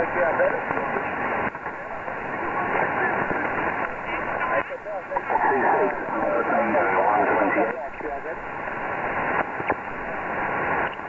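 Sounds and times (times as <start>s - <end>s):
voice over radio speaker: 0.0s - 8.4s
radio static hiss: 0.0s - 11.0s.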